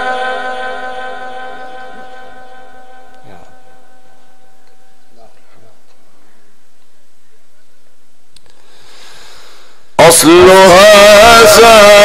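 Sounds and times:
steady hiss: 4.2s - 10.0s.

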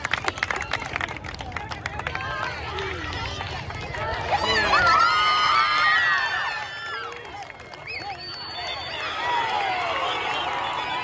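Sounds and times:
crowd shouting and cheering: 0.0s - 11.0s
scattered clapping: 0.0s - 11.0s.

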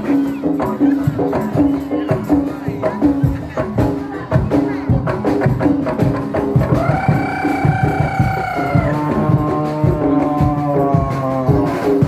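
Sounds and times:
quick drum beat: 0.0s - 12.0s.

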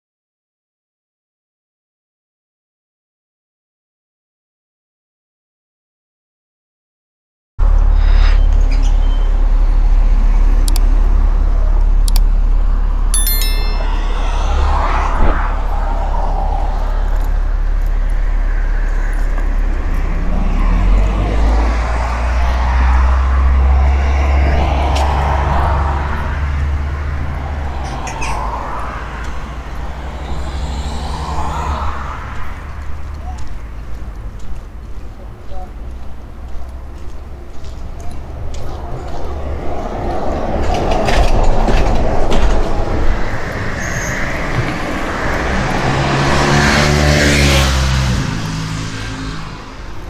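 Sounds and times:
steady low traffic rumble: 7.6s - 43.8s
cars passing: 7.6s - 50.0s.

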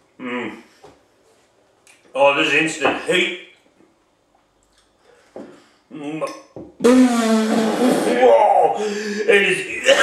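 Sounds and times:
man groaning: 8.0s - 10.0s.

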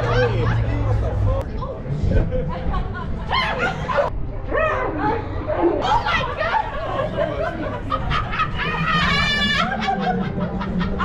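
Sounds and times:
women screaming: 8.5s - 10.1s.

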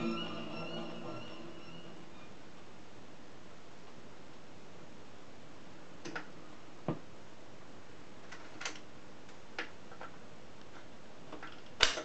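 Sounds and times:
record surface hiss: 0.0s - 12.0s
soft record clicks: 3.8s - 5.2s, 6.0s - 6.4s, 8.2s - 12.0s.

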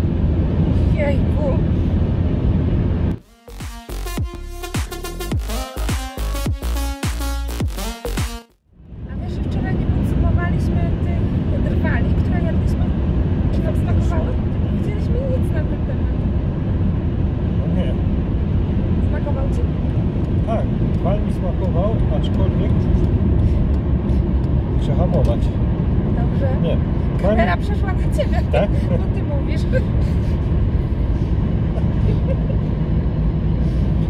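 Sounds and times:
car road and engine noise: 0.0s - 34.0s.

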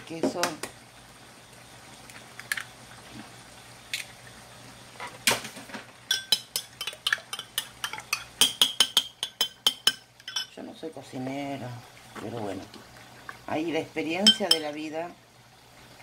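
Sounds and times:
spoon beating eggs in a bowl: 6.1s - 10.5s.

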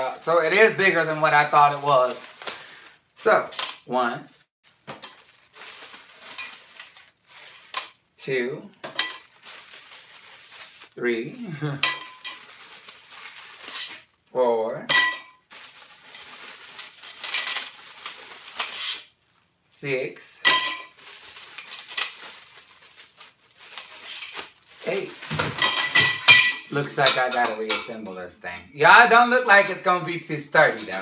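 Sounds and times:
plastic wrapping crinkling: 0.0s - 3.2s, 4.3s - 8.0s, 8.8s - 11.0s, 12.0s - 14.2s, 15.3s - 19.5s, 20.9s - 26.1s
metal tube clinking: 25.6s - 28.0s.

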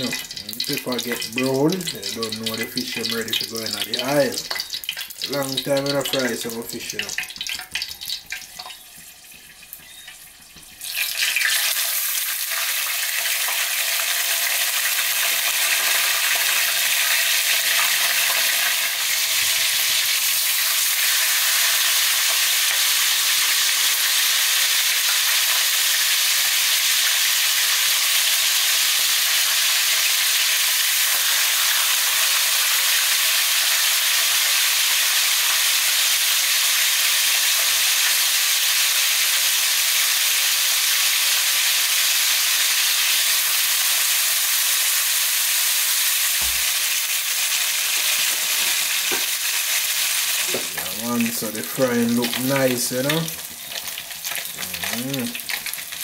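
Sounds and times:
fish frying in oil: 0.0s - 56.0s.

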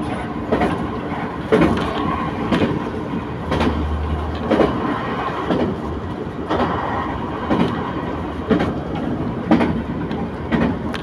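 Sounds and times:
train wheels rumbling on rail: 0.0s - 11.0s
wheels clacking over rail joints: 0.0s - 11.0s.

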